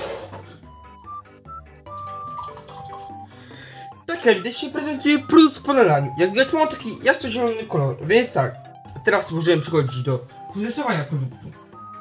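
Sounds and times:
fizzy drink pouring into glass: 0:01.9 - 0:03.3.

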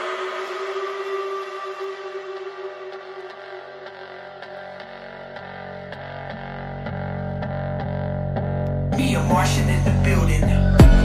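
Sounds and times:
held synth chord: 0:00.0 - 0:10.0.

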